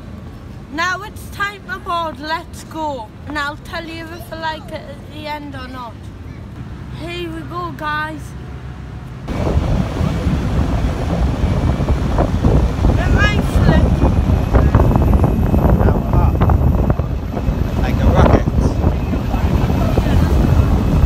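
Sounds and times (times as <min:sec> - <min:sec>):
speedboat engines running hard: 0:02.3 - 0:21.0
wind buffeting on microphone: 0:09.3 - 0:21.0.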